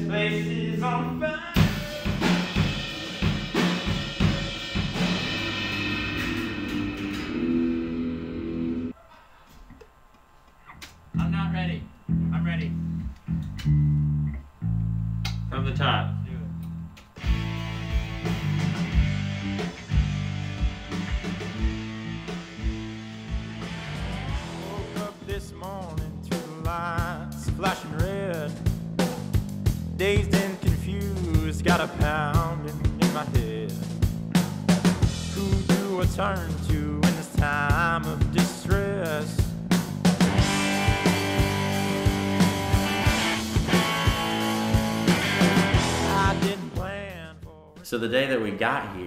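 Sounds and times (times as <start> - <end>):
drum kit: 1.5 - 8.9, 17.2 - 47.9
electric guitar: 1.6 - 8.9, 17.2 - 28.5, 40.1 - 46.9.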